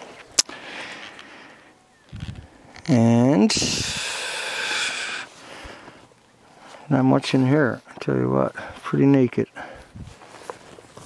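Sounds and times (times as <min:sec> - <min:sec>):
long breathy exhale: 0:03.5 - 0:06.0.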